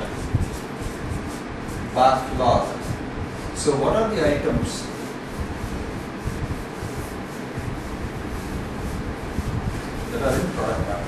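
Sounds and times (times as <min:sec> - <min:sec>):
marker rubbing on a board: 0:00.0 - 0:11.0.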